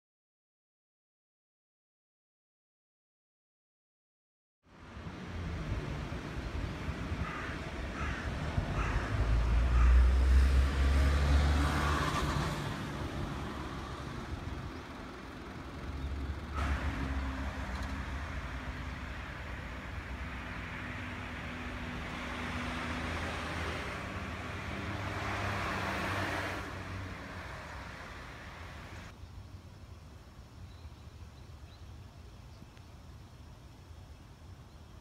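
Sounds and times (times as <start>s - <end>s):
cars passing by: 4.7s - 29.2s.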